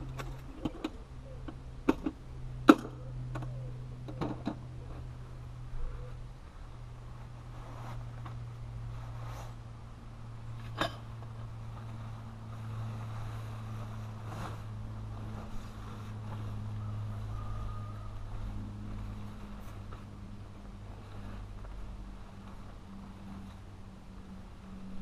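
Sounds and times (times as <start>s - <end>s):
low mechanical hum: 0.0s - 25.0s
tarp rustling and clicking: 10.6s - 17.2s.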